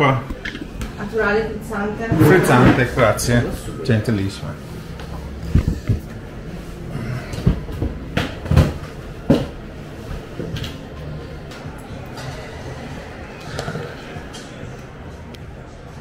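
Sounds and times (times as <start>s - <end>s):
low room murmur: 0.0s - 16.0s.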